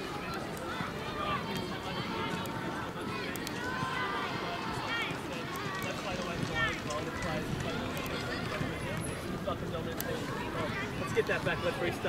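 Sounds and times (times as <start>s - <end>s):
outdoor background noise: 0.0s - 12.0s
overlapping voices talking: 0.0s - 12.0s.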